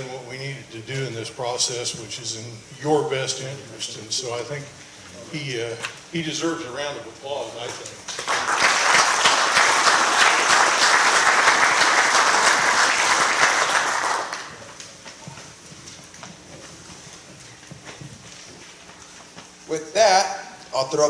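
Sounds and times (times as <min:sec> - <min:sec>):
audience applauding: 0:08.1 - 0:14.8.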